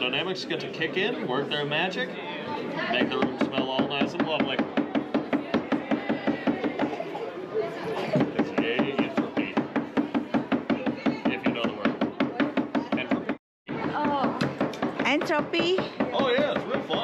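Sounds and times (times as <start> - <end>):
people talking: 0.0 - 4.6, 5.4 - 9.6, 10.8 - 17.0
rapid steady knocking: 2.9 - 7.0, 8.2 - 17.0.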